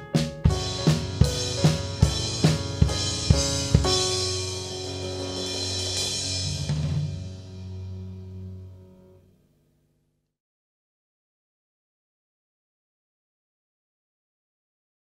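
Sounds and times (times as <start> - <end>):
bass drum and snare hits: 0.0 - 7.7
band holding sustained chords: 0.5 - 9.4.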